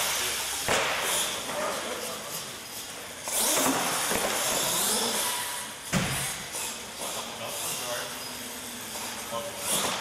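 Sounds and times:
toy truck motor and tyres: 0.0s - 10.0s.

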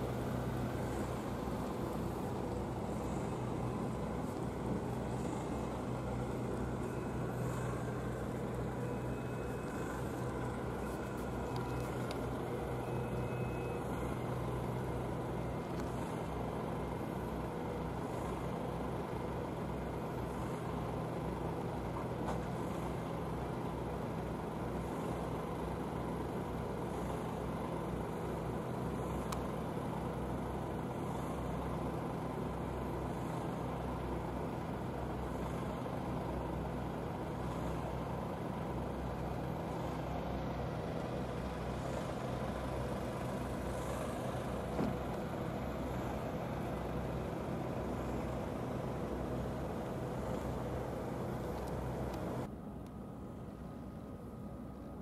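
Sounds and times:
constant hiss: 0.0s - 55.0s
vehicle engine idling: 0.0s - 55.0s.

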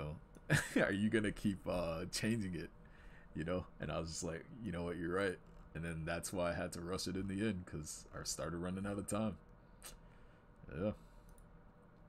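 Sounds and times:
faint computer clicks: 11.2s - 11.5s.

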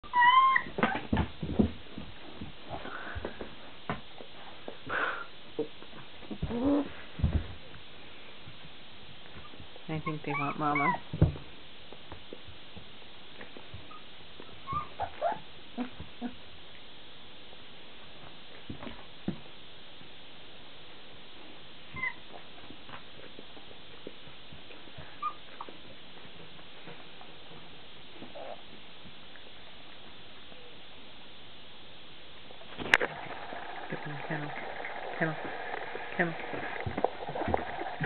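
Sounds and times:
puppy whining: 0.0s - 1.2s, 9.4s - 11.1s, 13.8s - 16.4s, 21.9s - 22.4s, 25.0s - 26.0s, 28.2s - 28.8s.

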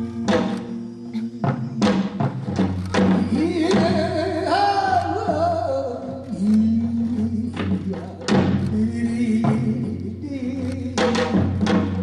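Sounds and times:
barrel drums struck with sticks: 11.0s - 12.0s.

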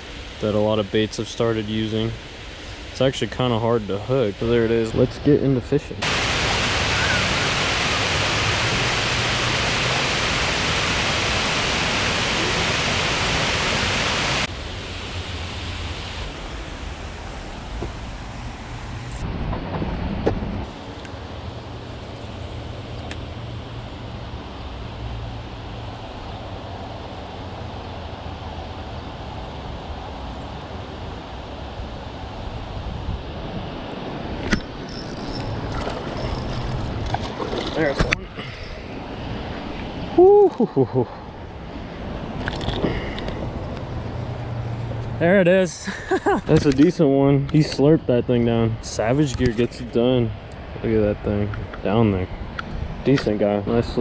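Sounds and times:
water rushing over a weir: 0.0s - 19.3s, 33.8s - 40.7s.

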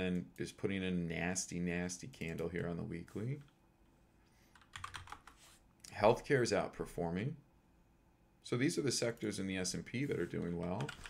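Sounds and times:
quiet keyboard typing: 4.5s - 5.5s, 10.4s - 11.0s.

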